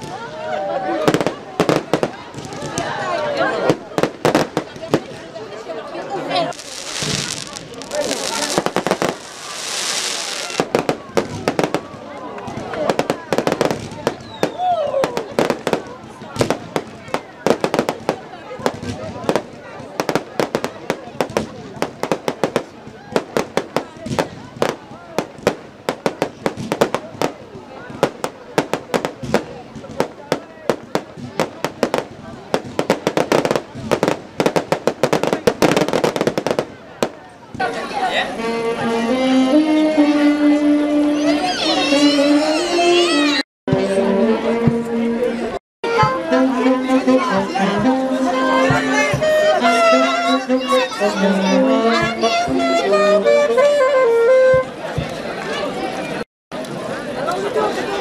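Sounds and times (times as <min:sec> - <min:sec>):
fireworks bangs and cracks: 0:00.0 - 0:05.7, 0:06.5 - 0:37.8
fireworks hissing rush: 0:06.4 - 0:37.7.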